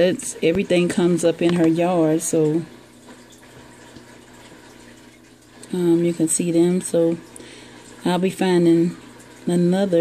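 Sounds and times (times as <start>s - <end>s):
water trickling: 0.0s - 10.0s.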